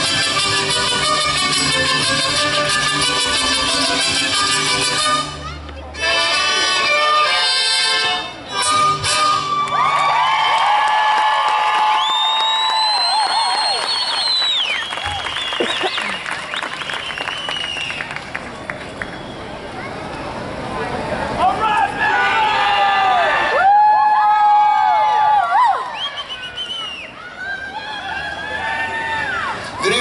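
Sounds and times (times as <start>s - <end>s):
mariachi band playing: 0.0s - 9.8s
audience cheering and shouting: 9.4s - 13.9s, 21.4s - 26.1s, 27.1s - 30.0s
applause: 9.6s - 19.4s
loud high whistle: 11.9s - 18.2s, 25.8s - 27.2s.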